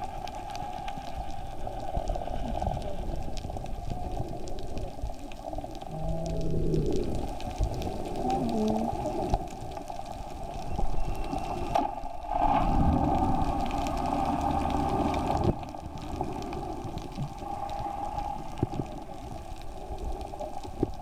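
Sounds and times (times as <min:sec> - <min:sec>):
underwater bubbling and gurgling: 0:00.0 - 0:21.0.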